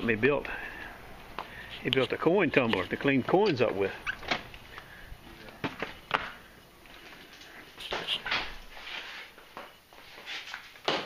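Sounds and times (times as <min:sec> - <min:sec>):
door opening: 0:03.4 - 0:04.6.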